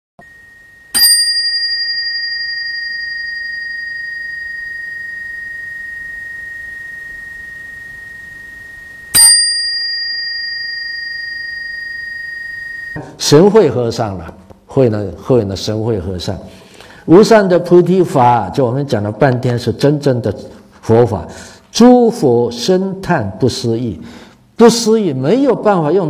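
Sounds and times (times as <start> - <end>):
small bell ringing: 0.9 - 13.0.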